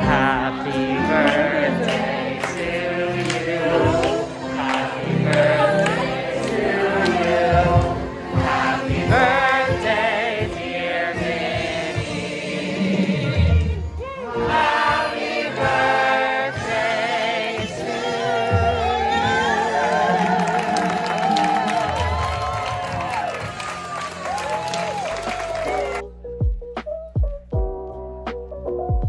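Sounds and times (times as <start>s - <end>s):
choir singing over music: 0.0s - 24.4s.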